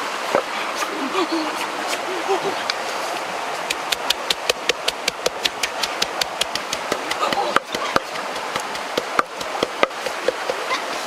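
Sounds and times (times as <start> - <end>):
wooden pestle pounding in mortar: 3.7 - 10.7.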